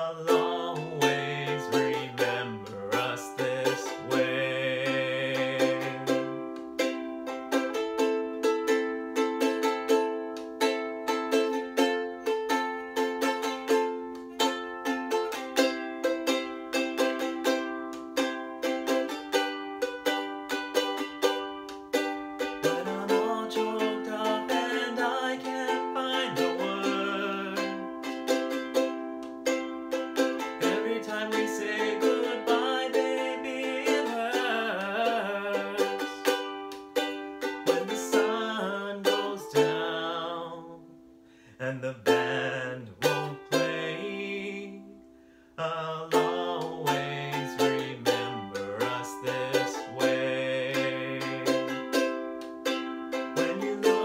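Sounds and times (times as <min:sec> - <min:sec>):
man singing: 0:00.0 - 0:06.9, 0:22.4 - 0:29.2, 0:30.2 - 0:52.3, 0:53.1 - 0:54.0
ukulele strumming: 0:00.0 - 0:54.0.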